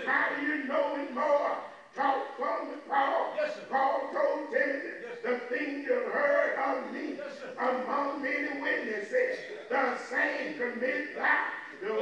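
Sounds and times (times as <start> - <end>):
man preaching into a microphone: 0.0 - 12.0.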